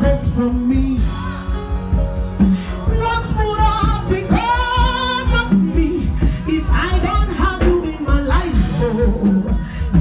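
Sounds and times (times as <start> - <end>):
band with steady beat: 0.0 - 10.0.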